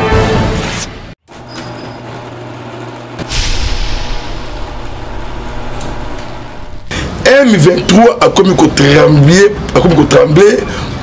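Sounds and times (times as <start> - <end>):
booming impact with hissing tail: 3.2 - 7.0
low rumbling drone: 3.3 - 7.3.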